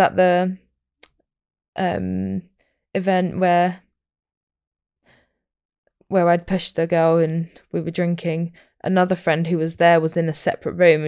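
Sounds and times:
faint breath: 0:05.0 - 0:05.4.

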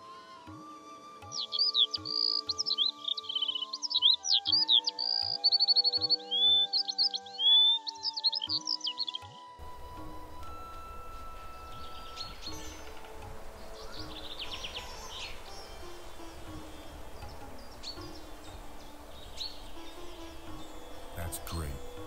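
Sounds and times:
soft ambient music: 0:00.0 - 0:22.0
birds chirping: 0:01.3 - 0:22.0.

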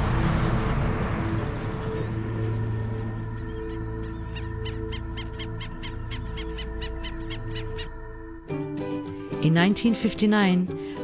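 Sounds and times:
music drone: 0:00.0 - 0:09.2.

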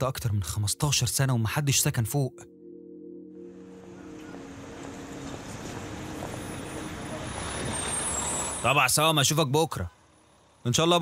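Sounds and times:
low musical drone: 0:00.4 - 0:08.1
steady rushing traffic noise: 0:03.5 - 0:11.0.

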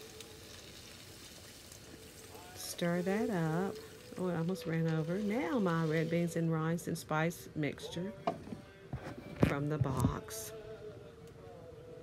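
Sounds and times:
food sizzling in skillet: 0:00.0 - 0:07.5.

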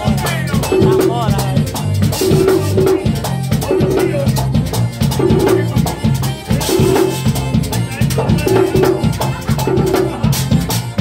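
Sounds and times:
button accordion melody: 0:00.0 - 0:11.0
hand drum rhythm: 0:00.0 - 0:11.0
shaker percussion: 0:00.0 - 0:11.0.

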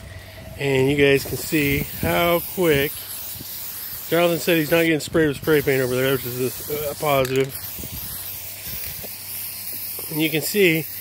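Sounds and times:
spray paint can hissing: 0:00.1 - 0:11.0.

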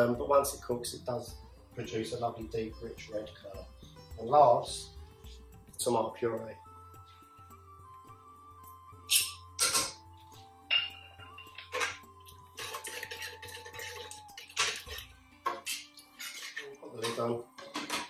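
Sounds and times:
soft background music: 0:00.0 - 0:18.0.

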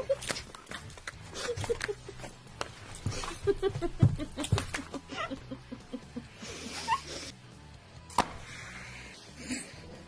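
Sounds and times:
muffled laughter: 0:01.2 - 0:02.3, 0:03.1 - 0:07.3.

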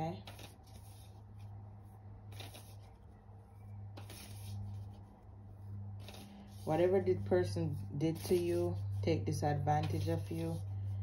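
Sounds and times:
steady low hum: 0:00.0 - 0:11.0
cards being shuffled: 0:00.2 - 0:01.2, 0:02.3 - 0:03.0, 0:04.0 - 0:05.0, 0:06.0 - 0:07.2.

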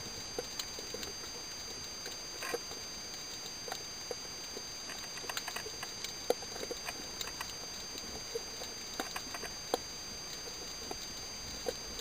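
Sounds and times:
faint high whine: 0:00.0 - 0:12.0
underwater clicks and crackles: 0:00.1 - 0:12.0.

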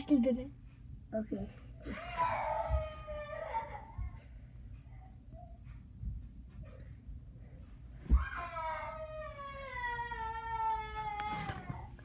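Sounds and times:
child wailing: 0:01.8 - 0:04.1, 0:08.1 - 0:11.9.

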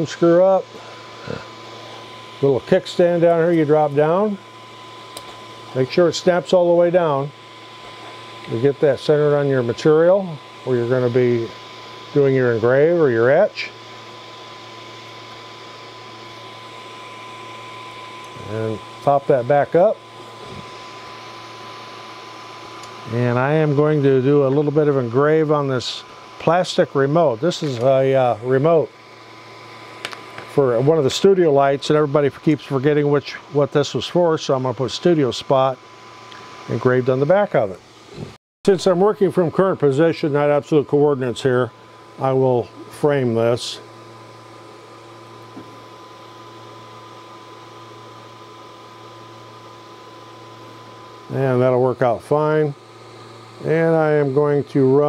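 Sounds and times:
fan hum: 0:00.0 - 0:55.0
thin constant whine: 0:00.0 - 0:55.0.

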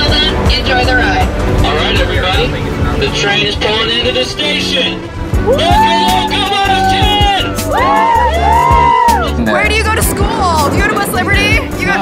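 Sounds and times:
pop music with sung vocals: 0:00.0 - 0:12.0.

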